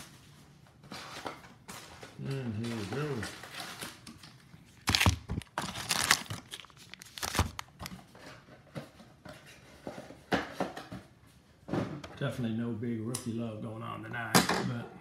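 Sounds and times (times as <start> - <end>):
packaging crinkling and tearing: 1.8 - 8.1.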